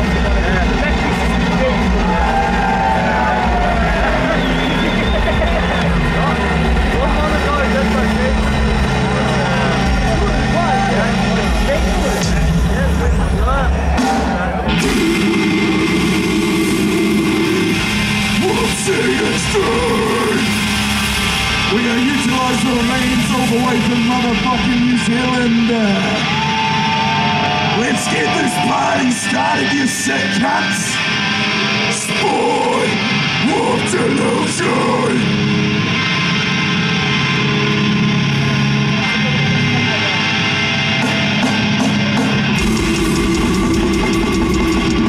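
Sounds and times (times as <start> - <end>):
death metal band playing live: 0.0 - 45.0
distorted electric guitars droning: 0.0 - 45.0.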